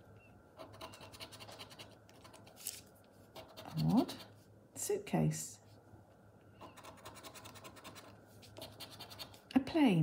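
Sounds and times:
poker chip scratching a scratchcard: 0:00.6 - 0:02.8, 0:03.4 - 0:04.3, 0:06.6 - 0:09.4.

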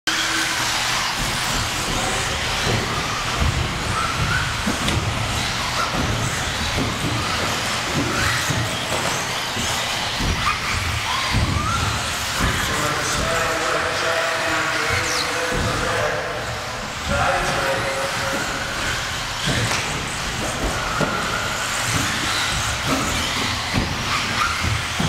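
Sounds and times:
electric motor whines: 0:00.1 - 0:25.0
track noise: 0:00.3 - 0:25.0
low thumps: 0:01.0 - 0:25.0.

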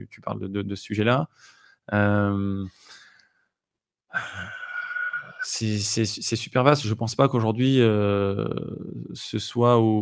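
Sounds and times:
man breathing out: 0:02.8 - 0:03.4.

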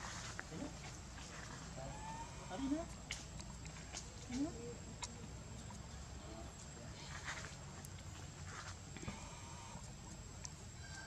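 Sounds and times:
monkey calling: 0:01.9 - 0:02.9.

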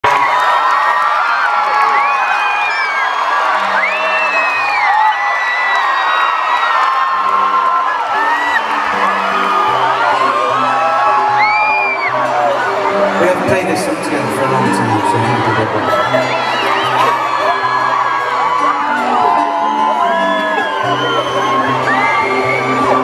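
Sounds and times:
concert crowd screaming and whooping: 0:00.0 - 0:23.0
live music with low held notes: 0:06.6 - 0:23.0.

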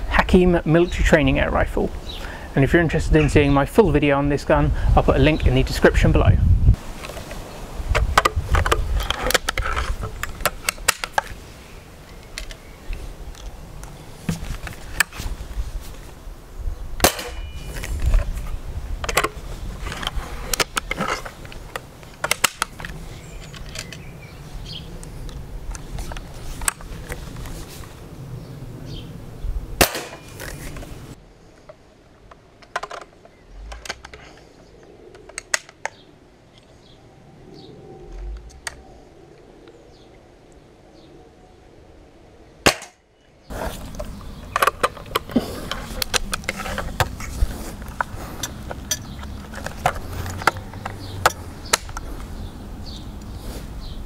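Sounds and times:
outdoor background noise: 0:00.0 - 0:54.0
air rifle shot crack: 0:17.0 - 0:17.5, 0:29.8 - 0:30.3.

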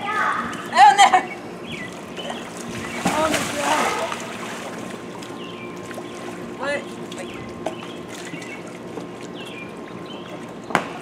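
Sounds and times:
pool water splashing: 0:00.0 - 0:11.0.

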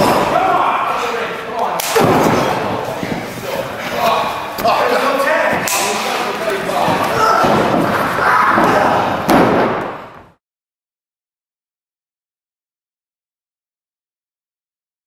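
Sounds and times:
voices: 0:00.0 - 0:09.2
bodies thudding on wrestling ring: 0:06.9 - 0:10.0.

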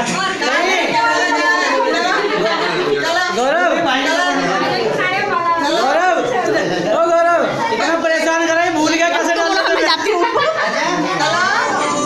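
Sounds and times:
party chatter: 0:00.0 - 0:12.0.

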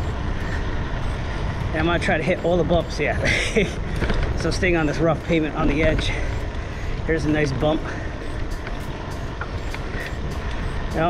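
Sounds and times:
wind buffeting microphone: 0:00.0 - 0:11.0
bike knocking over bumps: 0:03.6 - 0:05.0.

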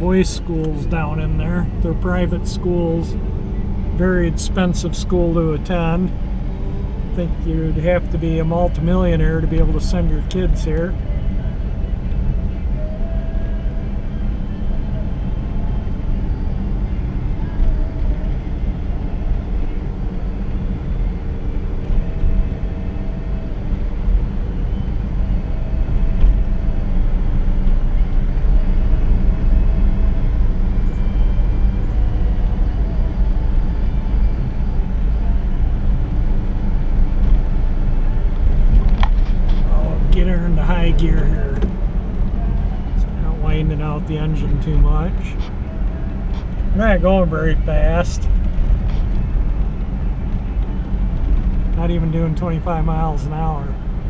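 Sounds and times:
car engine running: 0:00.0 - 0:54.0
tyre and road rumble: 0:14.2 - 0:54.0.

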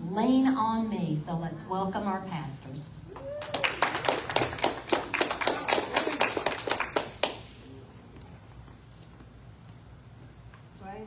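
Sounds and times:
congregation clapping: 0:03.2 - 0:07.6.

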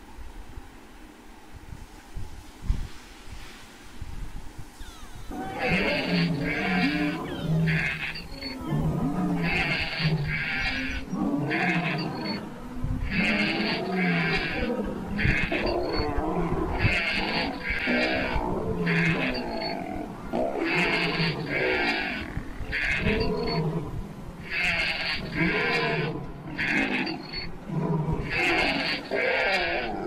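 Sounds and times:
higher animal calls: 0:04.7 - 0:30.0
lion growls and roars: 0:05.3 - 0:30.0.

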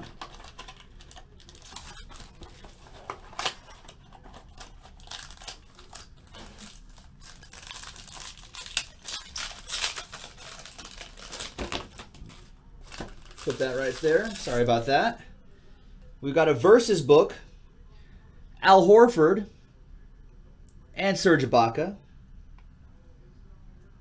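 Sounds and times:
foil wrapper crinkling and ripping: 0:00.0 - 0:15.0.

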